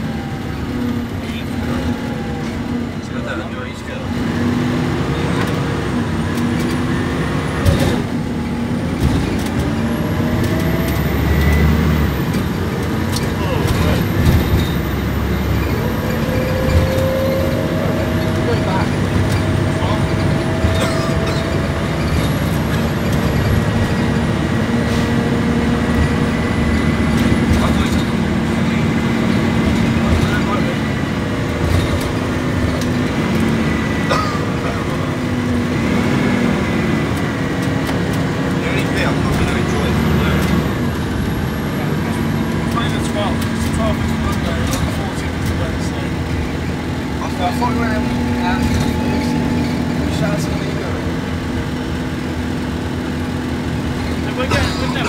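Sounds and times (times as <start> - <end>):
bus diesel engine running: 0.0 - 55.0
road noise: 0.0 - 55.0
interior rattles and clicks: 5.1 - 55.0.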